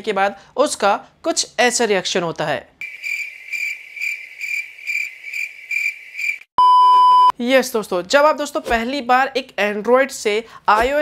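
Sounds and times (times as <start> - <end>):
crickets chirping: 2.8 - 6.5
test-tone beep: 6.6 - 7.3.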